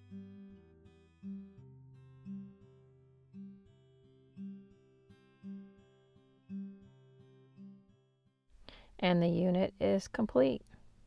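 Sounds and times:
acoustic guitar chords: 0:00.0 - 0:08.4.

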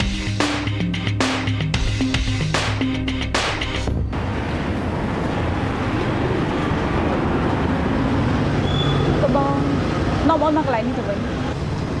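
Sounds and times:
street traffic noise: 0:00.0 - 0:12.0.

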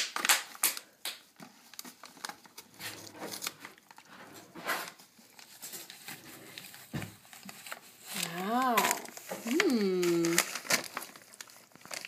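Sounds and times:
wrapping paper crinkling and tearing: 0:00.0 - 0:04.2, 0:04.9 - 0:12.0
voice holding a note: 0:08.2 - 0:10.4.

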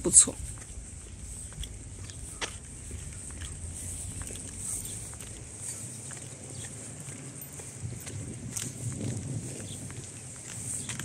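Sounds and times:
footsteps on paved path: 0:00.0 - 0:11.0
wind rumble on microphone: 0:00.0 - 0:11.0.

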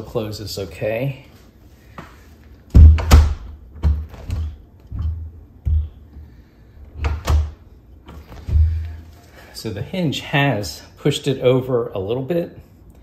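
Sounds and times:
door knocking and thudding on frame: 0:02.7 - 0:05.9, 0:08.4 - 0:08.9.

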